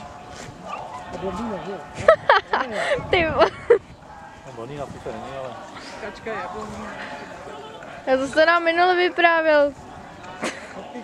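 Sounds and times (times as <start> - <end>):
background voices: 0.0 - 11.0.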